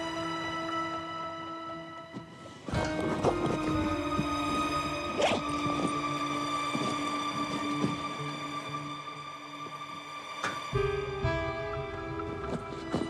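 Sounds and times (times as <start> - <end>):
sustained drama score: 0.0 - 13.0.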